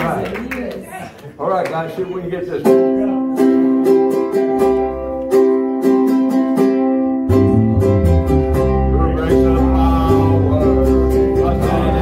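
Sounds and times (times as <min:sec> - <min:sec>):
plucked string instrument picking notes: 0:02.6 - 0:12.0
low bass line: 0:07.2 - 0:12.0.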